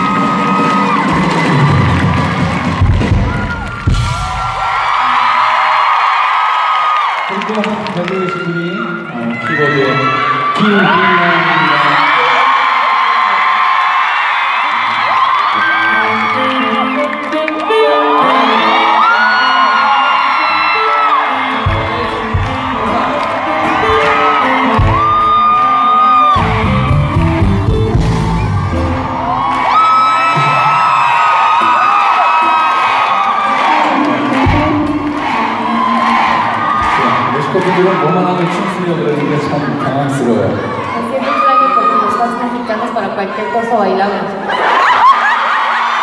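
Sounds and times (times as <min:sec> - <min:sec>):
heavy drums: 0:00.0 - 0:05.3, 0:21.5 - 0:25.6, 0:26.3 - 0:37.5
crowd screaming and cheering: 0:00.0 - 0:46.0
live pop rock band: 0:15.2 - 0:36.9.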